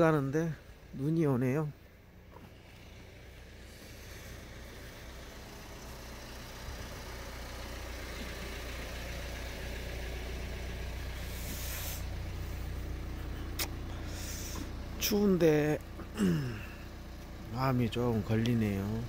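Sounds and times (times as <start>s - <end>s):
car engine idling: 0.0s - 19.0s
brief hiss: 11.2s - 12.2s
sharp click: 13.6s - 13.8s.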